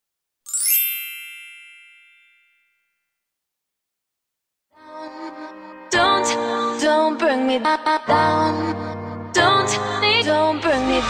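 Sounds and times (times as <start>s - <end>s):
bright metallic chime: 0.5s - 3.0s.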